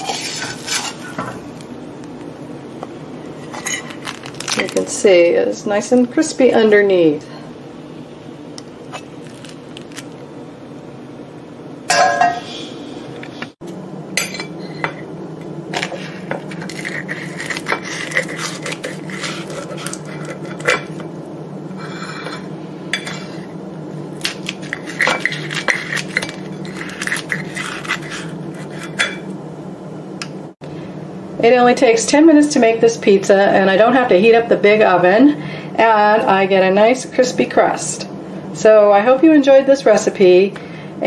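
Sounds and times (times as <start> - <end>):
blades scraping a plate: 0.0 - 1.4, 15.8 - 21.0, 21.8 - 23.5, 24.6 - 29.3
scissors snipping crispy crust: 3.6 - 4.9, 15.8 - 21.0, 24.2 - 29.1.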